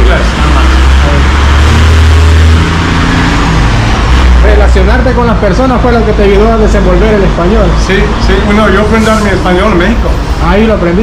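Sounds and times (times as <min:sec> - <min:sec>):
vehicle engine rumble passing: 0:00.0 - 0:11.0.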